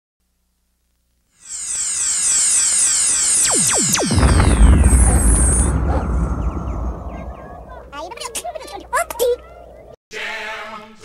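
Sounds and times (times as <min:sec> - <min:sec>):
electronic downward sweeps: 0:01.4 - 0:08.4
steep pitch dives: 0:01.4 - 0:08.6.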